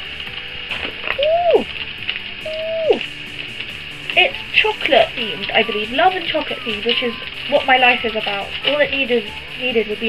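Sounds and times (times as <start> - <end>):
woman exclaiming ooh: 1.2 - 1.7, 2.4 - 3.0.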